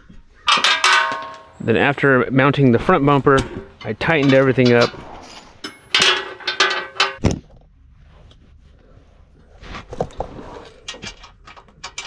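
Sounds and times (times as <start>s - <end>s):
hand tools knocking on metal bolts: 0.5s - 1.8s, 3.2s - 5.0s, 5.6s - 7.2s.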